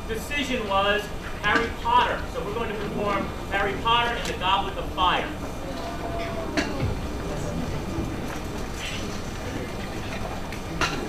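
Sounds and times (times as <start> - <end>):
faint audience murmur: 2.1 - 11.0.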